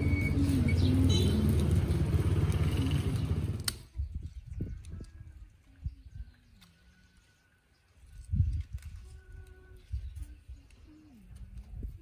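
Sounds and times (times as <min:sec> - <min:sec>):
vehicle engine running: 0:00.0 - 0:03.8.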